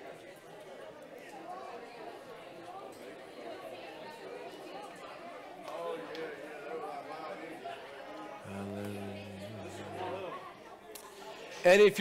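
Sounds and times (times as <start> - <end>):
congregation chatting: 0.0 - 12.0.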